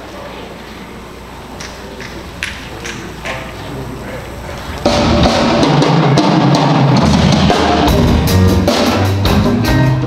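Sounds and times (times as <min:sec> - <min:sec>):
hall noise: 0:00.0 - 0:10.0
concert band playing: 0:00.9 - 0:10.0.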